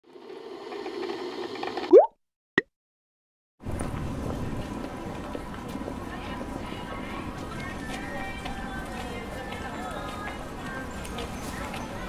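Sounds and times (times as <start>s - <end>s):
short plop: 1.9s - 2.1s.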